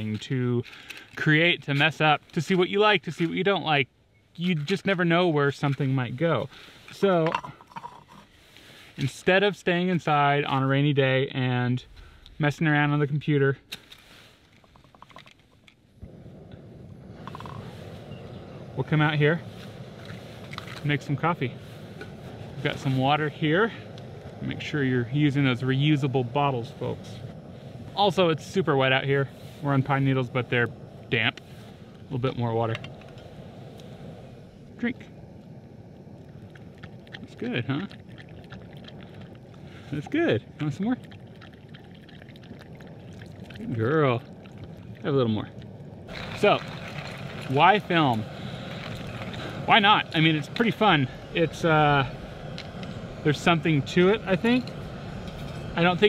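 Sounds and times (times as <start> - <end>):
dog lapping water: 36.5 - 39.4, 41.0 - 43.6
stove burner rushing: 43.7 - 56.0.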